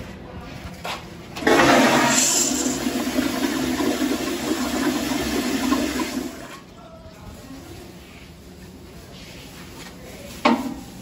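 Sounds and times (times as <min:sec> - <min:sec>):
toilet flushing: 0:01.4 - 0:06.7.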